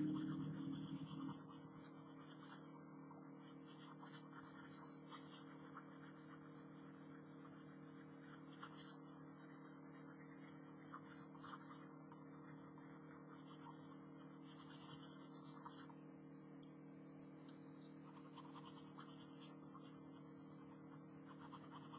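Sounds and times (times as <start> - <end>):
pencil scratching on paper: 0.0 - 15.9, 18.0 - 21.9
steady low hum: 0.0 - 21.9.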